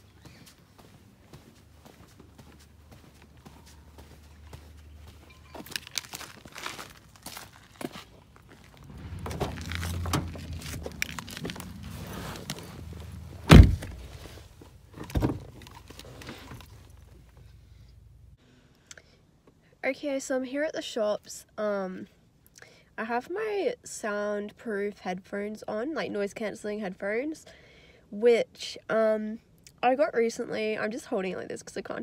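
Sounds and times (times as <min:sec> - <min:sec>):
footsteps on pavement: 0:00.0 - 0:14.1
light thunk: 0:08.8 - 0:11.8, 0:13.4 - 0:14.1
car door slamming: 0:08.8 - 0:14.4, 0:15.0 - 0:15.6.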